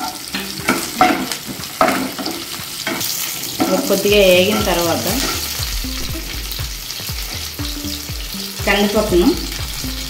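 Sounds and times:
spatula scraping and knocking pan: 0:00.0 - 0:07.6
spices sizzling in a frying pan: 0:00.0 - 0:10.0.

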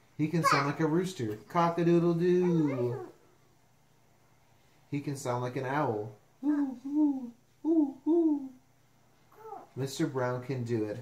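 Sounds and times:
man imitating owl hoots: 0:06.4 - 0:08.6.

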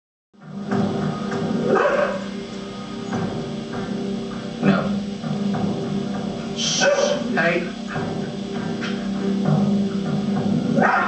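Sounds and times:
television background music: 0:00.4 - 0:11.0
dog barking: 0:01.7 - 0:02.3, 0:06.8 - 0:07.3, 0:10.8 - 0:11.0.

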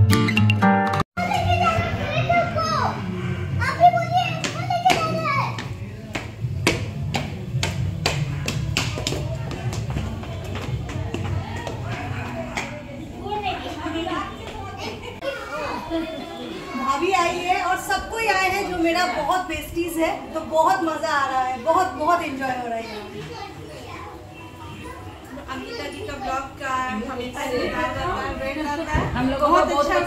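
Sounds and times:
children playing and calling out: 0:01.2 - 0:05.8, 0:09.2 - 0:17.6, 0:21.3 - 0:26.8
several people talking at once: 0:01.2 - 0:30.0.

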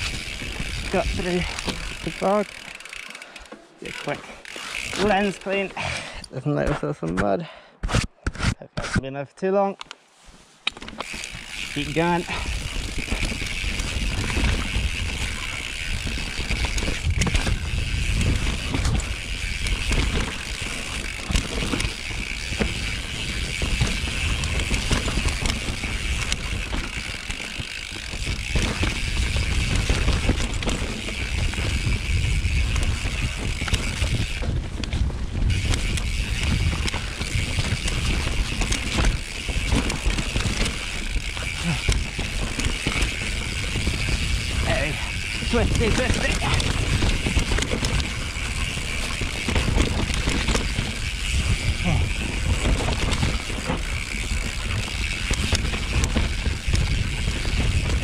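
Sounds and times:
bike frame and chain rattling: 0:00.0 - 0:06.3, 0:10.6 - 0:58.0
rear hub ticking: 0:11.0 - 0:58.0
tyres rumbling over dirt: 0:11.0 - 0:58.0.

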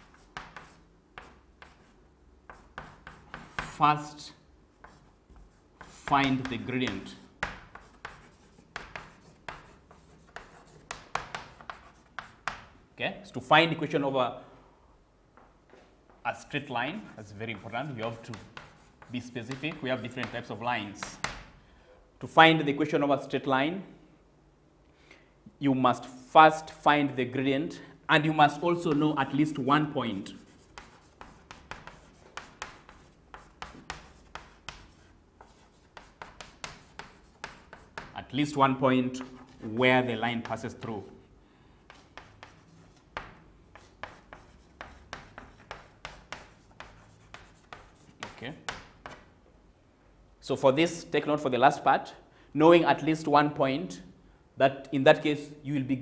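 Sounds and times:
chalk writing on blackboard: 0:00.0 - 0:12.8, 0:17.0 - 0:21.5, 0:28.5 - 0:38.3, 0:39.1 - 0:41.0, 0:41.8 - 0:49.3.

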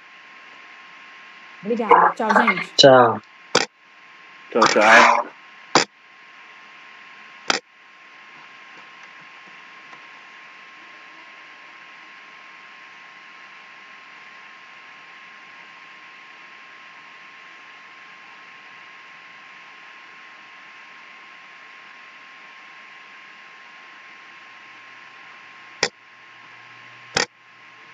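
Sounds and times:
thin steady whine: 0:00.0 - 0:27.9.

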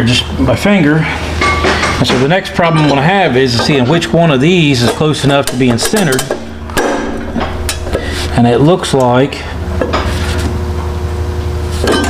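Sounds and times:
shop machinery humming: 0:00.0 - 0:12.0.

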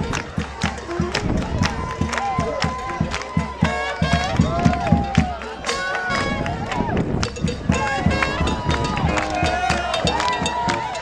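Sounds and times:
jazz band playing: 0:00.0 - 0:10.9
crowd noise: 0:00.0 - 0:11.0
drums keeping a beat: 0:00.0 - 0:11.0
horns: 0:00.0 - 0:11.0.

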